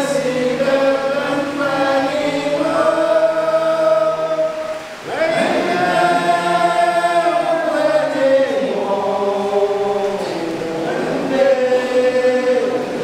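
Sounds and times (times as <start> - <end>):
men's choir singing unaccompanied: 0.0 - 13.0.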